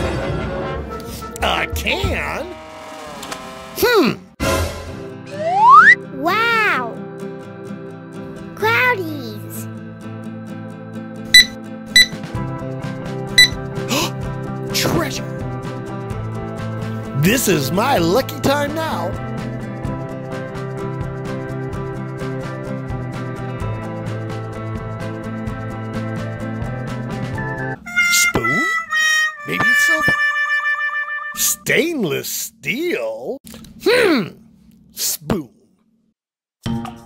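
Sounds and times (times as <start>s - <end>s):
background music: 0.0s - 31.7s
metal detector beeps: 11.4s - 12.2s, 13.4s - 13.6s.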